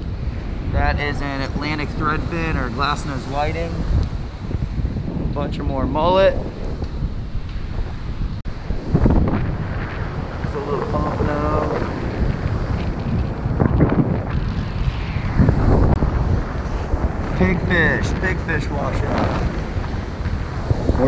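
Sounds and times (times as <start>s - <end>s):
wind buffeting microphone: 0.0s - 21.0s
ocean surf: 6.9s - 21.0s.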